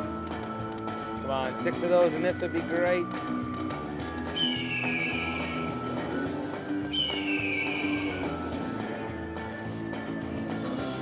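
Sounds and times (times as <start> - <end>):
falling whistle sound effects: 4.3 - 6.0, 6.9 - 8.4.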